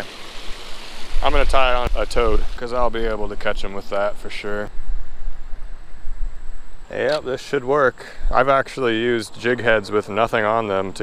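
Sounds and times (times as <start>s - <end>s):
faint hiss: 0.0s - 11.0s.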